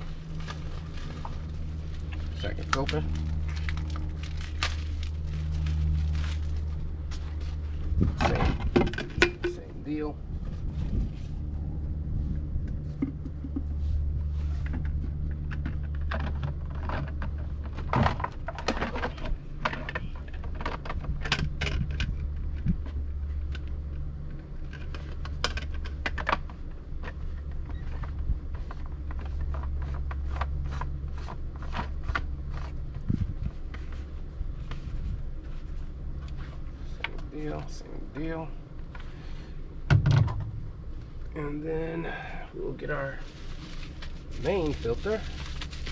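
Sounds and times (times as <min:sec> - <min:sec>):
steady low hum: 0:00.0 - 0:45.9.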